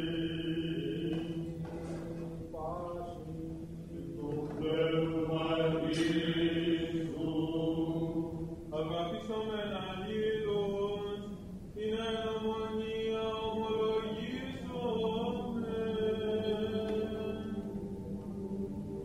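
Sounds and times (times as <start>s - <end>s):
held vocal drone: 0.0s - 19.0s
solo chanter singing: 0.0s - 19.0s.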